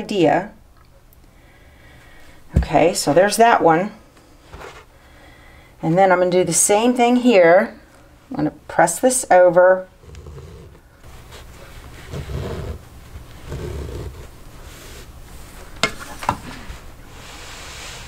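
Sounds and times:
hands rubbing fabric on table: 11.1s - 15.5s.

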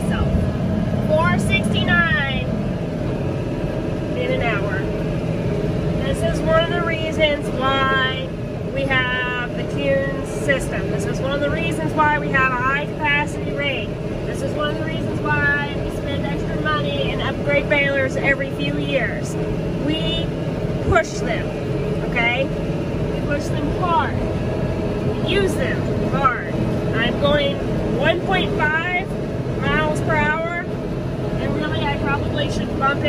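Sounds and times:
tractor engine running: 0.0s - 33.0s.

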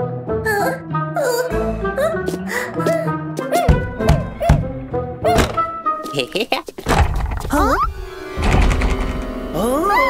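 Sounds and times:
cartoon music: 0.4s - 5.8s, 7.5s - 8.1s, 9.5s - 10.0s
dull thunks: 3.7s - 5.8s, 6.8s - 7.6s.

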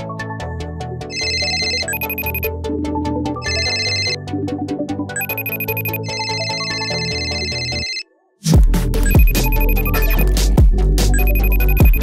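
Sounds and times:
background music: 0.0s - 12.0s
smartphone ringtone ringing: 1.1s - 2.5s, 3.4s - 4.2s, 5.2s - 8.1s, 9.0s - 10.3s, 11.1s - 12.0s.

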